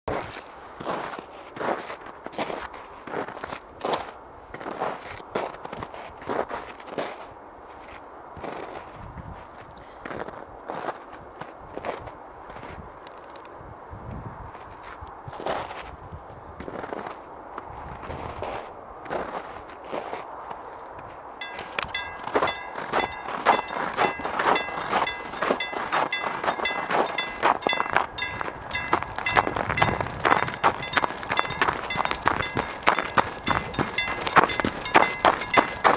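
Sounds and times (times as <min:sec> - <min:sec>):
footsteps crunching in snow: 0:21.4 - 0:35.9
level crossing bell clanging: 0:21.4 - 0:35.9.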